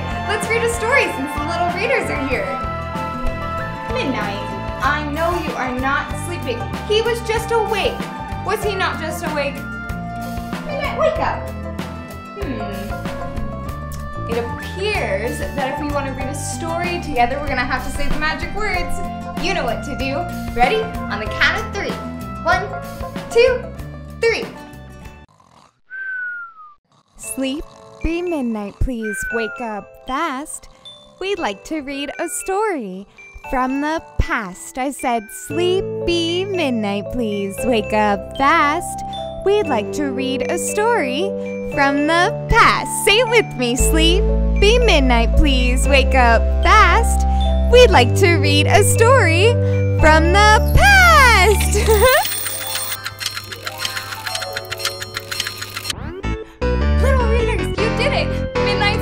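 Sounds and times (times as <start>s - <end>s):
cartoon whistled snore: 25.4s - 26.8s
rapid clock ticking: 51.2s - 56.0s.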